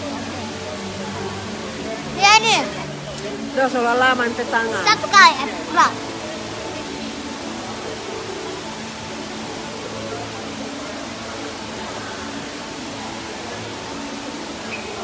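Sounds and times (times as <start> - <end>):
faint music: 0.0 - 15.0
hubbub of busy public place: 0.0 - 15.0.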